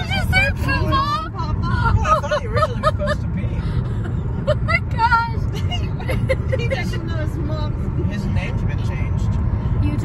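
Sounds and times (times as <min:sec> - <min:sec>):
car road rumble: 0:00.0 - 0:10.0
woman laughing: 0:02.0 - 0:03.3, 0:04.4 - 0:06.9.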